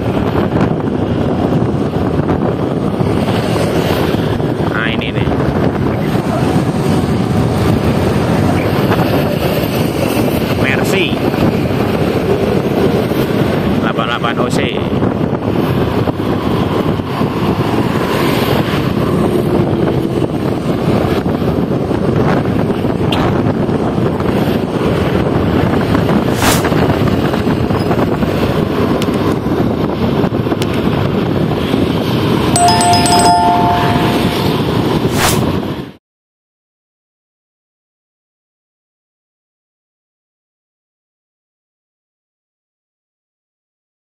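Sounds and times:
wind on microphone: 0.0 - 35.9
road traffic noise: 0.0 - 36.0.

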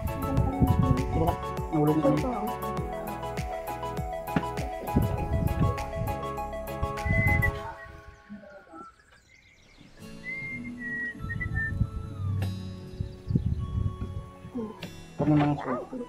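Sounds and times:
held music tones: 0.0 - 9.2, 9.8 - 16.0
whistled melody: 0.0 - 16.0.

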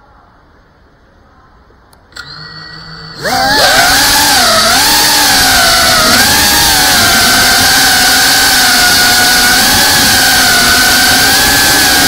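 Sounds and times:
drone motors whining: 2.2 - 12.0.

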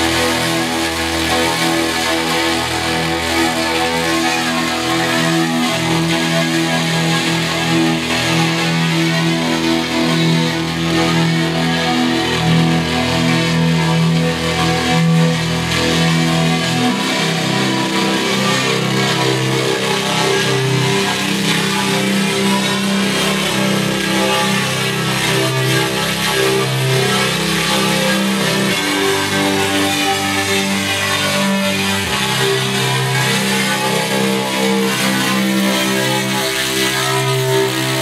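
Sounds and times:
electric guitar chords: 0.0 - 38.0.

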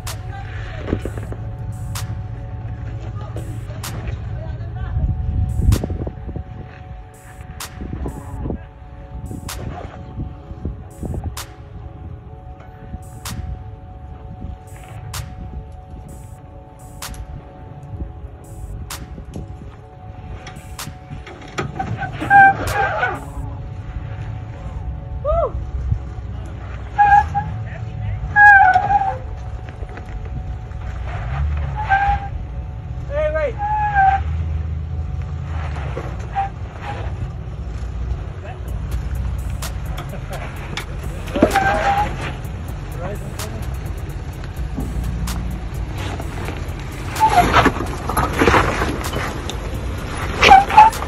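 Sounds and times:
low engine rumble: 0.0 - 51.0.

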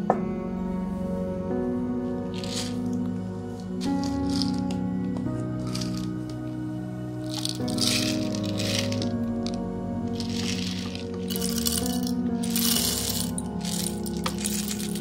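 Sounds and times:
background music: 0.0 - 15.0
coffee beans rattling into grinder: 2.4 - 2.8, 3.9 - 4.7, 5.6 - 6.2, 7.3 - 9.6, 10.2 - 15.0.

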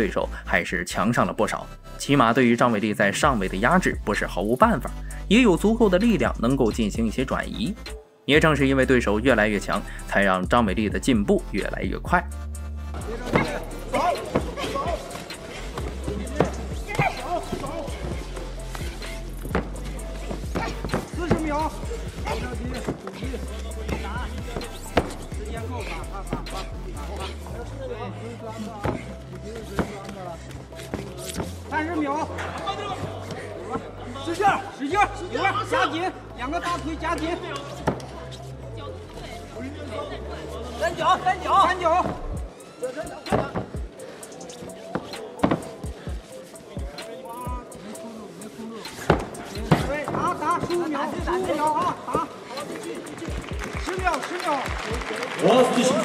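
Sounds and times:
background music: 0.0 - 56.0
coach shouting: 13.1 - 15.2, 15.9 - 18.2, 20.5 - 24.7
thuds and slaps of fighters grappling: 13.3 - 17.9, 20.4 - 21.7
punches smacking: 19.4 - 23.1.

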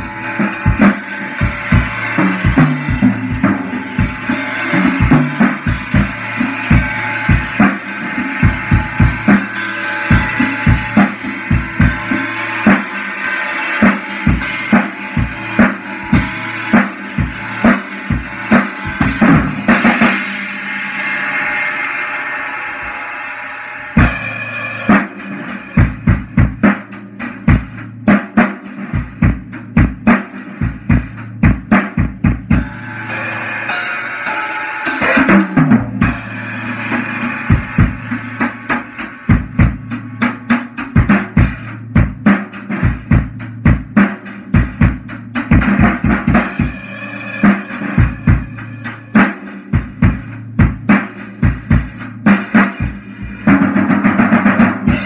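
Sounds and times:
ringing cymbal wash: 0.0 - 26.6, 32.5 - 40.2, 46.4 - 50.2
acoustic drum kit playing: 0.0 - 55.0.

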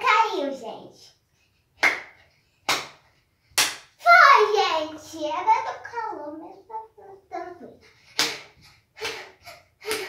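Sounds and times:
sharp hand claps: 1.8 - 3.0, 3.6 - 3.9, 8.2 - 10.0.

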